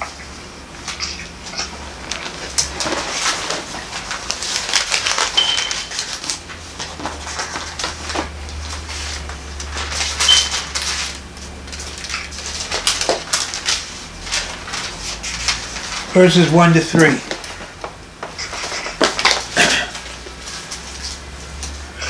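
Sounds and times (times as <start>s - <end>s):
paper pages rustling and turning: 0.8s - 21.8s.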